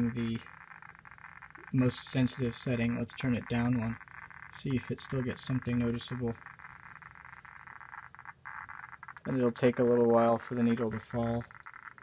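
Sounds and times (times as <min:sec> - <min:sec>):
geiger counter crackle: 0:00.0 - 0:12.0.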